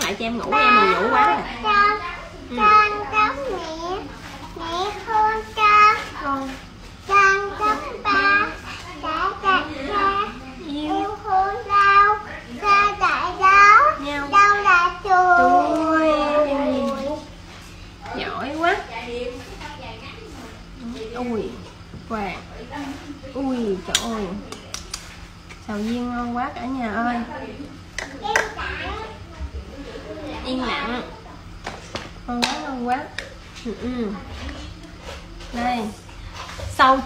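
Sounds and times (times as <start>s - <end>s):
woman's voice: 0.0s - 3.5s, 7.8s - 11.3s, 15.4s - 17.3s, 18.0s - 24.8s, 25.7s - 27.8s, 28.8s - 31.3s, 32.3s - 34.8s, 35.4s - 37.0s
child singing: 7.1s - 17.2s.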